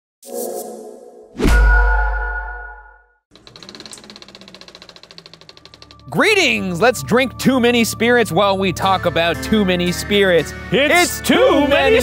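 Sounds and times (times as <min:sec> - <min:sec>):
film projector clattering: 0:03.3 - 0:06.6.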